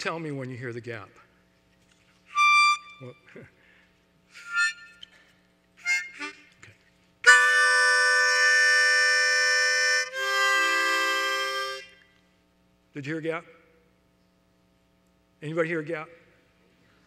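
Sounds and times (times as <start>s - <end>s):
harmonica playing chords: 2.3s - 3.3s, 4.3s - 12.1s.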